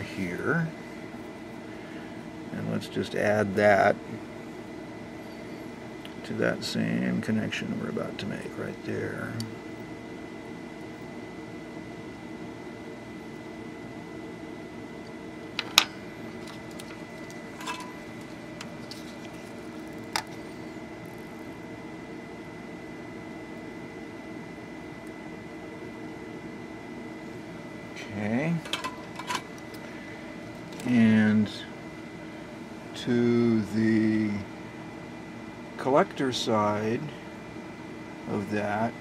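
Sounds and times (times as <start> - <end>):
electrical hum with high whine: 0.0 - 39.0.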